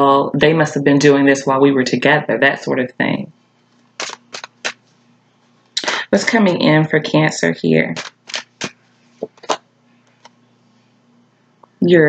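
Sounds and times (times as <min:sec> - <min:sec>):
cards being shuffled: 0:03.6 - 0:05.0, 0:07.9 - 0:10.4
crisp card snaps: 0:04.0 - 0:04.8, 0:08.0 - 0:10.4.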